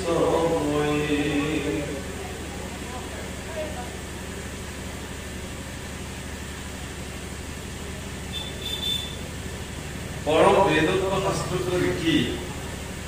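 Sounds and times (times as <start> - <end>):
electric fan hum and hiss: 0.0 - 13.0.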